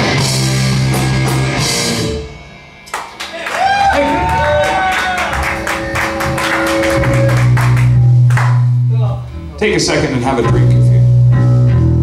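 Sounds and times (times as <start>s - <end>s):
rapid drum hits: 0.0s - 2.1s
rock band playing loudly: 0.0s - 9.4s
held low bass note: 5.8s - 12.0s.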